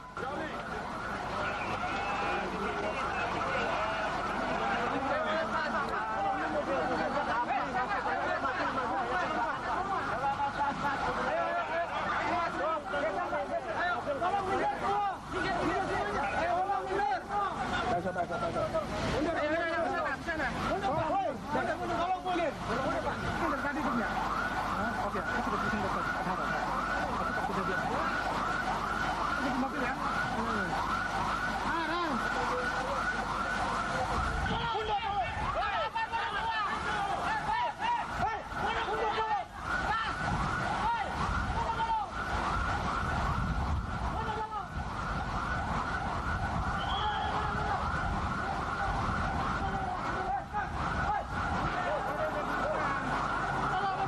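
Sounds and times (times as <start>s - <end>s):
raised voices: 18.8s - 42.8s, 46.1s - 54.0s
electronic siren wailing: 19.5s - 54.0s.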